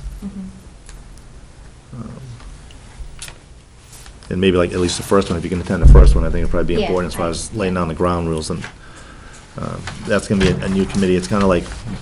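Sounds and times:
low hum and hiss: 0.0 - 12.0
soft vocal murmur: 0.2 - 0.7, 1.9 - 2.5.

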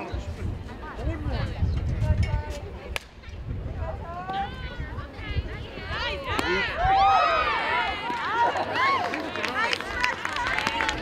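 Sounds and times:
bat cracking a ball: 3.0 - 3.3, 6.3 - 6.6
people shouting and cheering: 4.0 - 11.0.

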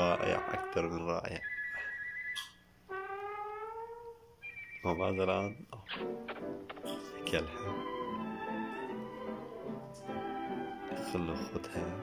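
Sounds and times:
high whistle-like tone: 4.4 - 5.6.

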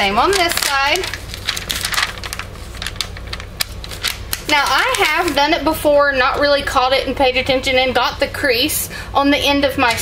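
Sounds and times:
paper crackling and clicking: 0.0 - 5.8, 9.8 - 10.0.

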